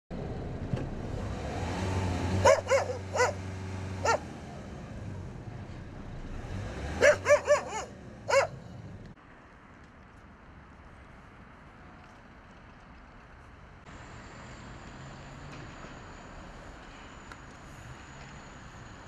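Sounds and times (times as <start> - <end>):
dogs barking: 2.4 - 4.3, 6.9 - 8.6.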